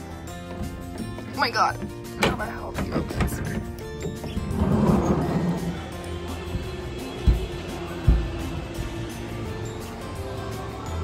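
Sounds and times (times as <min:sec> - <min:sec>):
music playing: 0:00.0 - 0:11.0.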